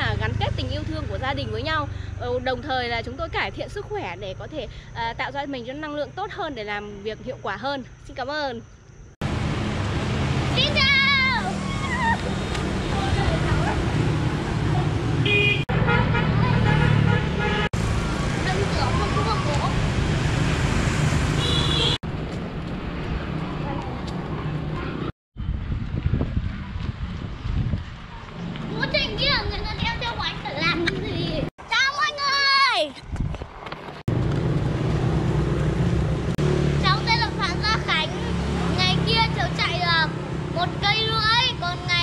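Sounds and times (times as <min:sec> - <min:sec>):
child calling out: 0:10.6 - 0:12.2, 0:18.5 - 0:19.7
boy squealing: 0:11.2 - 0:12.3.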